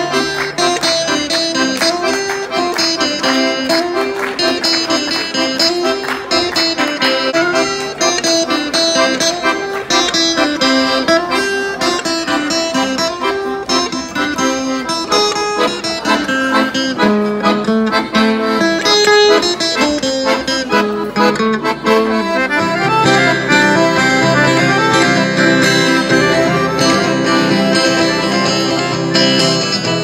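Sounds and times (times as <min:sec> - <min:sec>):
accordion melody: 0:00.0 - 0:30.0
strummed acoustic guitar: 0:00.0 - 0:30.0.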